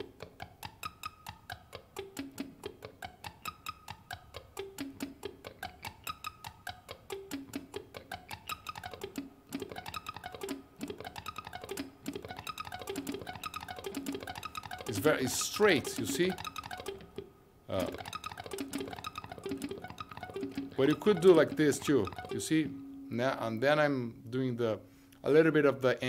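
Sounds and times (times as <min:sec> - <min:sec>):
electric guitar arpeggios: 0:00.0 - 0:23.1.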